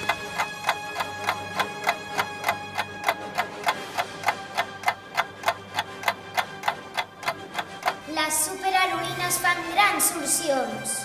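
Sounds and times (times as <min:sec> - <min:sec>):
clock-like ticking: 0:00.0 - 0:10.6.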